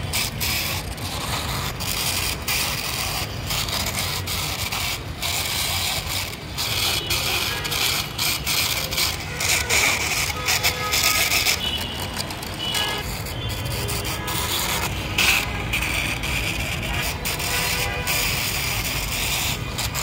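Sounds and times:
toy car wheels scraping on brick: 0.0 - 20.0.

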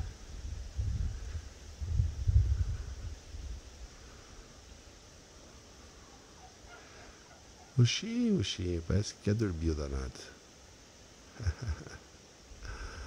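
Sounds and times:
wind buffeting microphone: 0.0 - 3.7
faint outdoor hiss: 0.0 - 13.0.

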